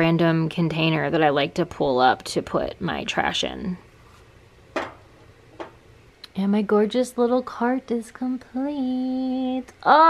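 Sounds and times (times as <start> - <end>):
plastic container knocking on tray: 4.8 - 5.0, 5.6 - 5.8.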